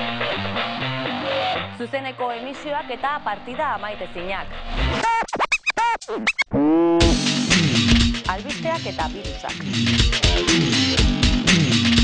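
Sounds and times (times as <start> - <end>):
record scratching: 4.6 - 7.3.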